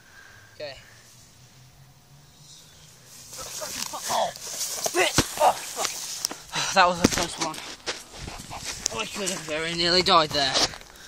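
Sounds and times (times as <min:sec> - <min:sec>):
grass rustling and scuffing: 0:02.2 - 0:11.0
sharp thud: 0:04.8 - 0:06.0
person crying out and grunting: 0:04.9 - 0:06.6.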